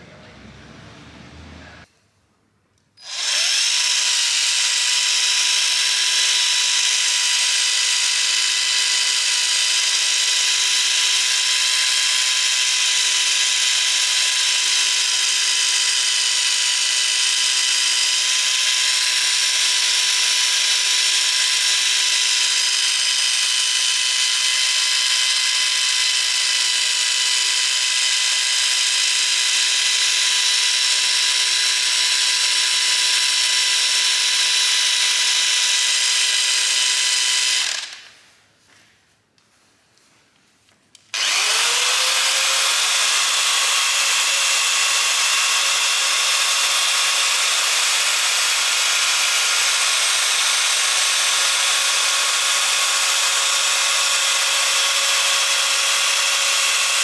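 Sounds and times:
polishing machine whining: 0:03.0 - 0:38.1, 0:41.2 - 0:57.0.

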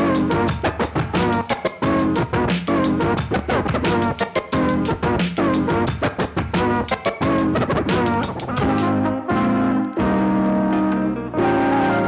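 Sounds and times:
record scratching stabs: 0:00.0 - 0:10.7.

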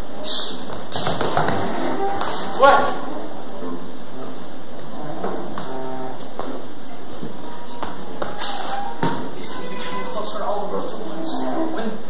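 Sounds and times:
footsteps on a stage: 0:00.6 - 0:02.6, 0:04.8 - 0:09.4.

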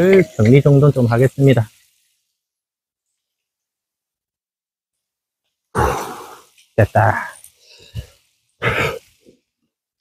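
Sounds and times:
man sighing: 0:05.8 - 0:06.5.

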